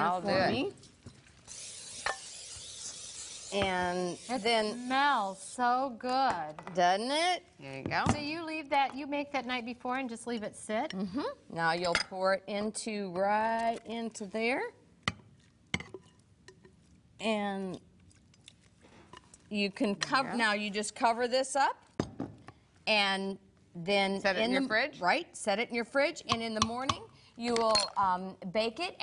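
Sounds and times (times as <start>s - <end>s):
aerosol spray hissing: 1.5s - 5.6s.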